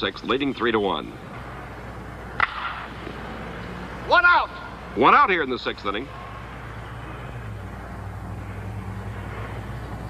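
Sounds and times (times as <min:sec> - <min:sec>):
baseball impact crack: 0:02.2 - 0:03.7.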